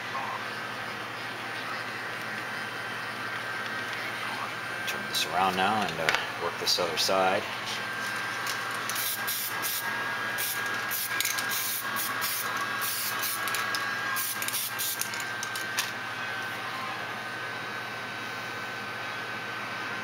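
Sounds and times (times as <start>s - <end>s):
heat gun blowing: 8.7s - 15.9s
aerosol spray can hissing: 8.9s - 9.8s, 10.4s - 15.1s.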